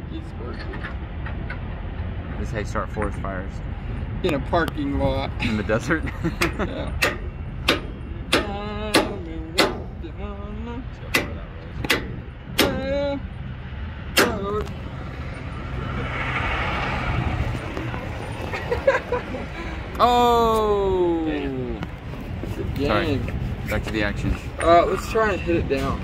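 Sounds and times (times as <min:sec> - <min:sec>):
hammer blows on metal bar: 0:07.0 - 0:10.0
rushing noise: 0:13.3 - 0:23.7.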